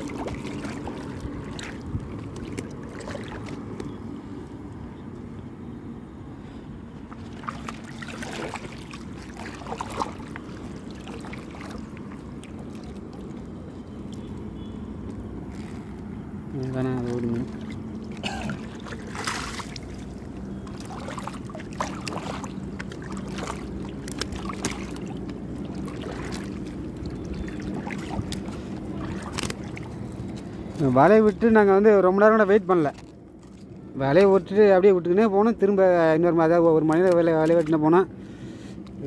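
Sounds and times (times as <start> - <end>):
net splashing and dripping: 0.0 - 4.0, 7.0 - 31.4.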